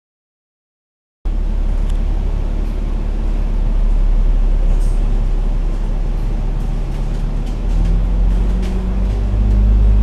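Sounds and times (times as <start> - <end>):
bus diesel engine droning: 1.3 - 10.0.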